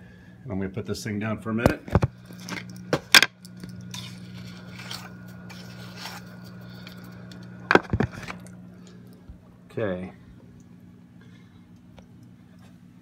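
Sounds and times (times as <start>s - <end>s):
steady low hum: 0.0s - 13.0s
light scraping and rustling: 3.9s - 7.2s
camera set down with a knock: 7.7s - 8.4s.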